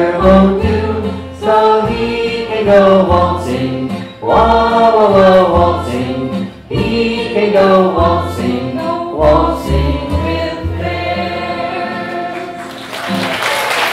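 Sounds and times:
group singing folk song: 0:00.0 - 0:12.9
string band playing: 0:00.0 - 0:13.3.

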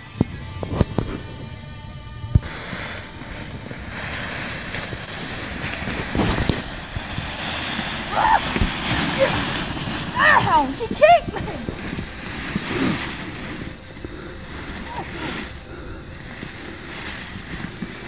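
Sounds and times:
background music: 0:00.0 - 0:18.0
crunching of dry leaves: 0:00.4 - 0:18.0.

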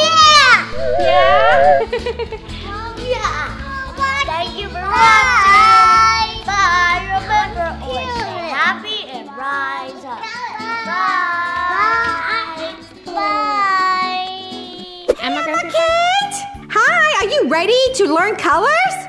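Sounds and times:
children shouting and squealing: 0:00.0 - 0:01.9
background music: 0:00.0 - 0:19.0.

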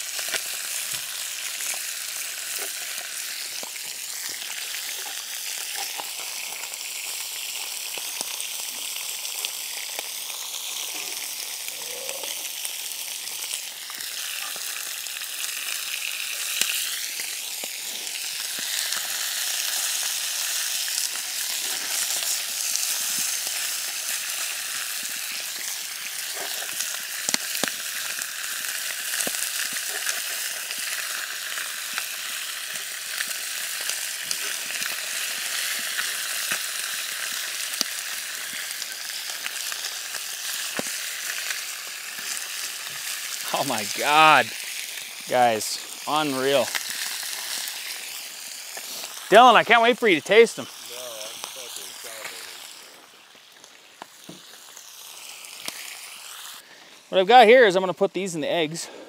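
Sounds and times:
fish sizzling in a skillet: 0:00.0 - 0:59.0.

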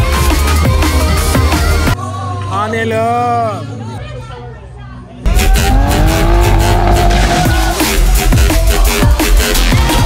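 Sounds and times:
car engine at high revs: 0:05.6 - 0:07.4.

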